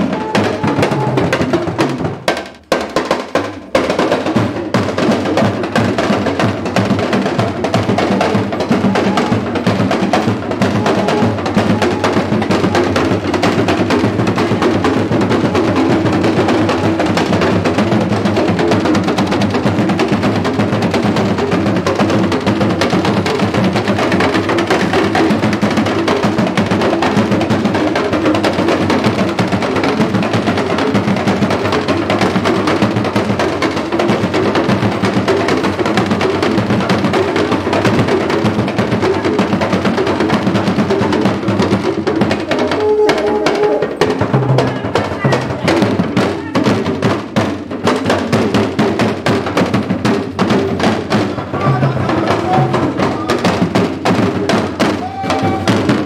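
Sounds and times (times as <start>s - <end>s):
talking drums rhythm: 0.0s - 56.0s.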